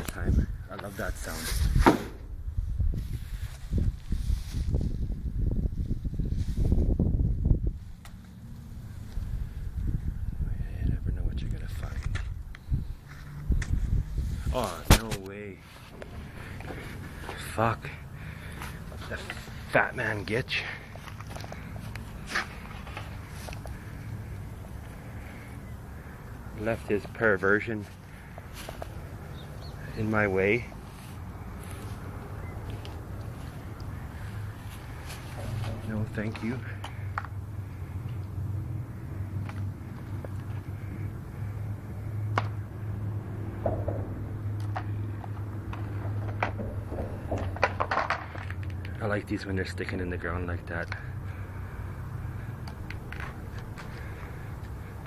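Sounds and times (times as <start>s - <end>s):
steady low hum: 0.0s - 55.0s
dry grass rustling: 2.5s - 10.2s, 11.8s - 42.0s
low rumble: 30.6s - 48.9s.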